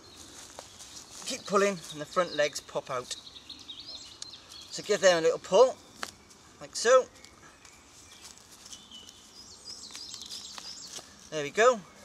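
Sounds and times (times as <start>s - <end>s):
bird chirping and twittering: 0.0s - 12.0s
quiet outdoor ambience: 0.0s - 12.0s.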